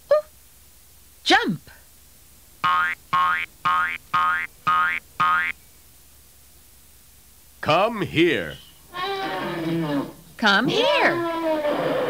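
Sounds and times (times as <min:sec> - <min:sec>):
cartoon boing effects: 0:02.6 - 0:05.6.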